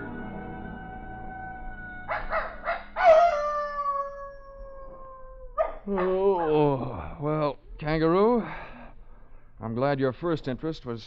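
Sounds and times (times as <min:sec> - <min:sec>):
dog howling: 0:00.8 - 0:06.8
dog yipping: 0:02.1 - 0:04.9, 0:05.5 - 0:06.6.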